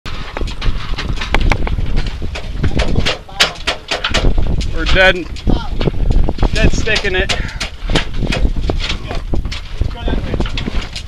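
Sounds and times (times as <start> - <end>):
sail flapping and snapping: 0.1 - 11.0
wind buffeting microphone: 0.1 - 11.0.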